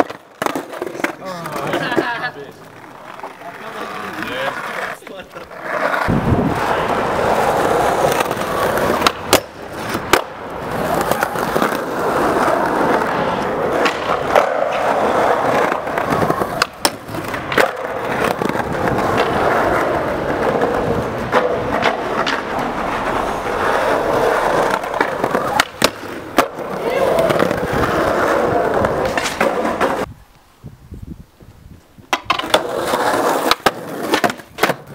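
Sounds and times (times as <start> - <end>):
skateboard clacking on ground: 0.0 - 30.1, 32.1 - 34.9
skateboard wheels rolling on concrete: 0.0 - 34.9.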